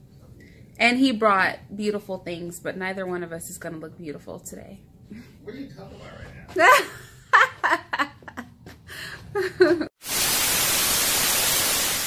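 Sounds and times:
white noise static hiss: 10.0 - 12.0.

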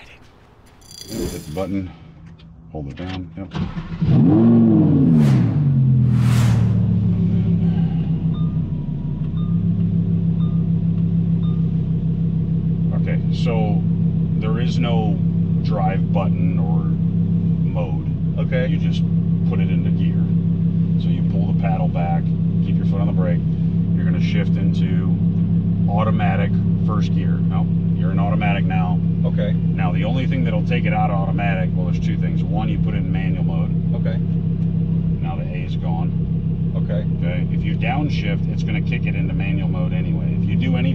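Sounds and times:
car engine revving and idling: 2.4 - 40.9.

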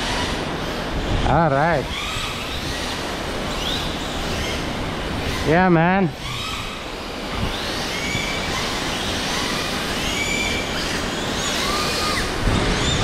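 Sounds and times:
rc car motors whining: 0.0 - 13.0.

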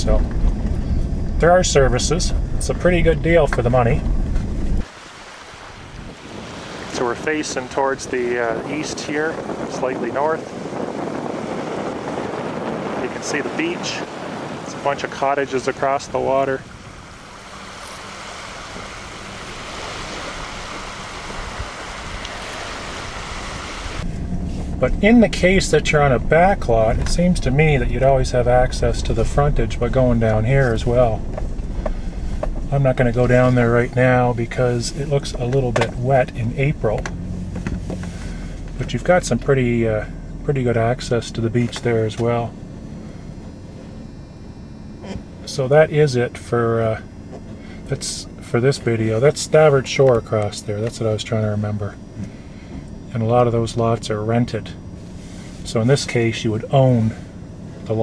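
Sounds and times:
vehicle running from inside cab: 0.0 - 4.8, 23.0 - 58.0
wind: 0.0 - 58.0
small waves washing on shore: 4.8 - 24.8.

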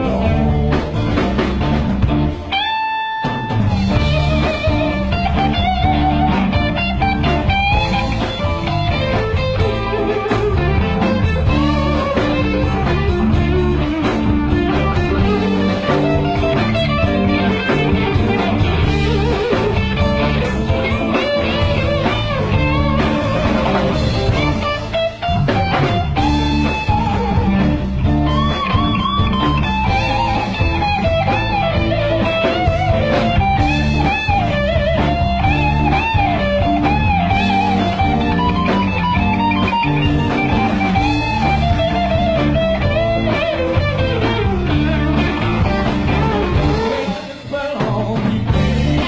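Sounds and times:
blues-rock band playing: 0.0 - 49.0
lead electric guitar: 0.0 - 49.0.

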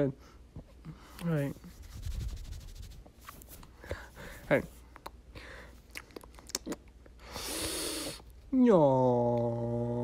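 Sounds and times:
person breathing with a hiss: 7.2 - 8.3.

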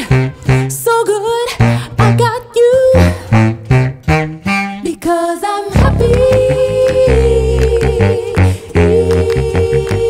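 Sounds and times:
low saxophone bass notes: 0.0 - 1.0, 1.6 - 4.9, 5.7 - 10.0
woman singing with vibrato: 0.7 - 3.4, 4.8 - 10.0.

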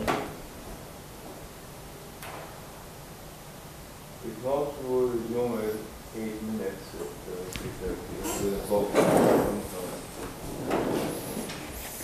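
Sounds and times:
people moving scraping and rustling: 7.0 - 12.0.

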